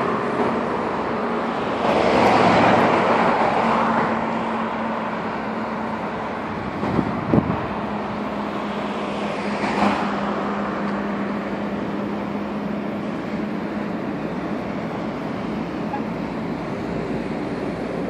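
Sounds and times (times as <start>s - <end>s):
cars passing by: 0.0s - 18.0s
low engine hum: 0.0s - 18.0s.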